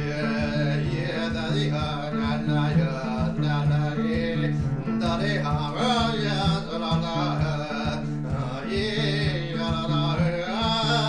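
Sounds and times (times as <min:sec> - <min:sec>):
person singing wordless chant: 0:00.0 - 0:11.0
plucked cello: 0:00.0 - 0:11.0.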